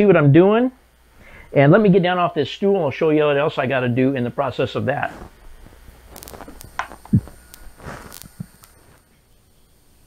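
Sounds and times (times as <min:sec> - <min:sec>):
shuffling: 0:05.0 - 0:09.0
clothing rustle: 0:05.1 - 0:07.0.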